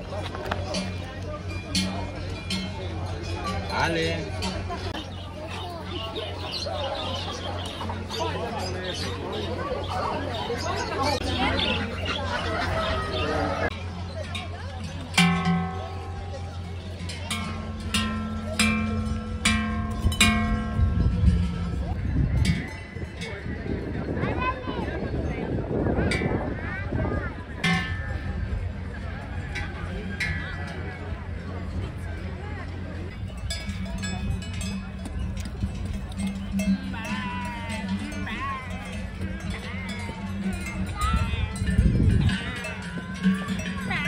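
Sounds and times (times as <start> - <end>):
cowbells clanging: 0.0 - 44.0.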